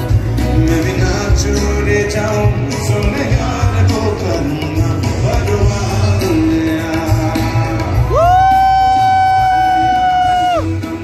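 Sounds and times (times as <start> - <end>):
crowd noise: 0.0 - 11.0
live band music: 0.0 - 11.0.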